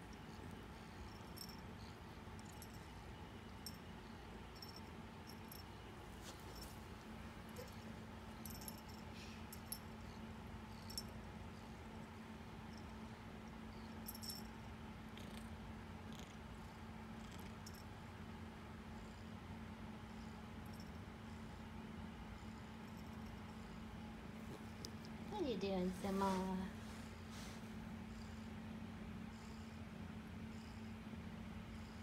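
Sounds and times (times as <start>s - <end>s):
kitten purring: 15.1s - 16.6s, 17.2s - 17.6s.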